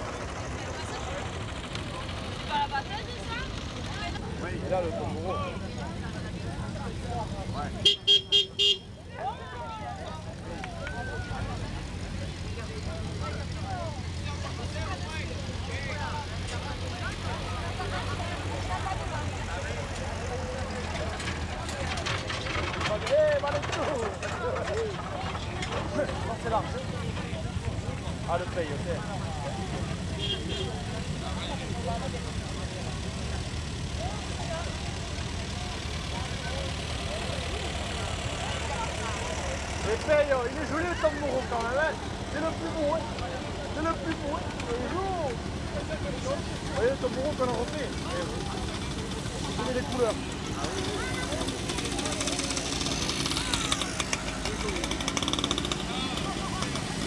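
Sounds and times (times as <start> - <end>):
people chattering: 0.0 - 57.0
tractor engines droning: 0.0 - 57.0.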